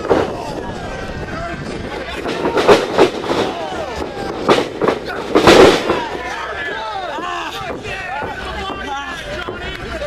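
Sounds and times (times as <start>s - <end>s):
spectators shouting: 0.0s - 10.0s
bodies impacting wrestling ring: 2.2s - 6.2s.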